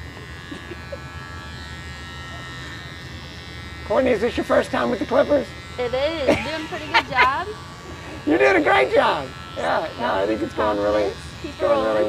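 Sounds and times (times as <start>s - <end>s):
electric hair clippers buzzing: 0.0s - 12.0s.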